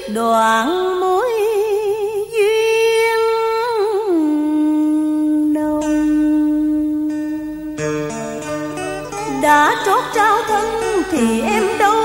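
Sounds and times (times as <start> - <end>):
woman singing with vibrato: 0.0 - 7.8, 9.2 - 12.0.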